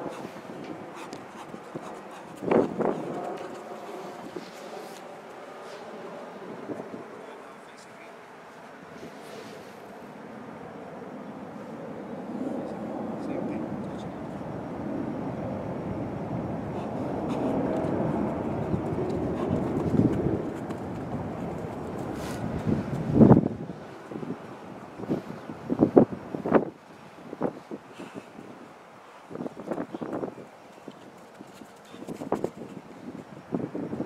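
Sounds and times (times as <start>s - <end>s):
low outdoor rumble: 0.0s - 26.4s.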